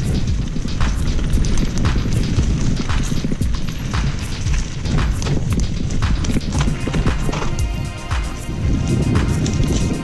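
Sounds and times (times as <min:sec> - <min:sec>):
bike tyres rolling over dirt: 0:00.0 - 0:10.0
wind on microphone: 0:00.0 - 0:10.0.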